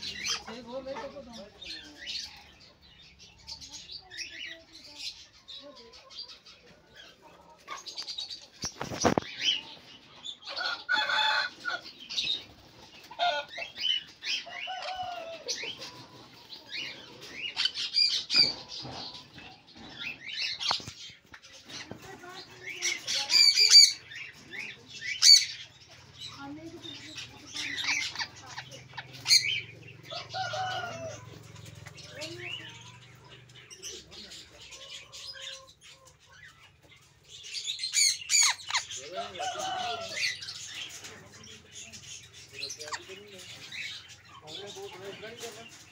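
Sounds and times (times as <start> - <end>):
parrots squawking: 0.0 - 2.4, 9.0 - 21.0, 22.6 - 31.2, 37.4 - 41.0.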